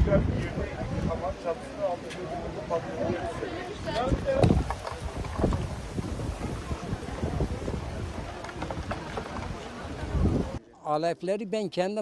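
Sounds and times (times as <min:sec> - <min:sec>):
wind buffeting microphone: 0:00.0 - 0:01.4, 0:03.0 - 0:10.6
crowd voices: 0:00.0 - 0:10.8.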